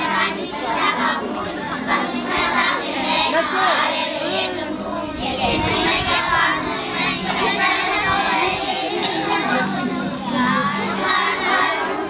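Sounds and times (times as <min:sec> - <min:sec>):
children chattering: 0:00.0 - 0:12.0
children singing together: 0:00.0 - 0:12.0.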